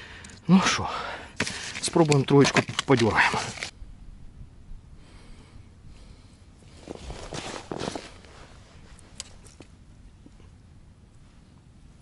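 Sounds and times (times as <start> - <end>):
man breathing out heavily: 0.0 - 1.8, 4.9 - 6.5
faint rustling: 6.6 - 10.6.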